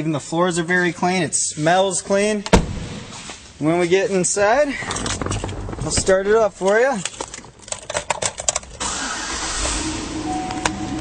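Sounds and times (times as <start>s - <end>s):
key rattling in ignition: 4.8s - 8.9s
car engine starting and running: 7.3s - 11.0s.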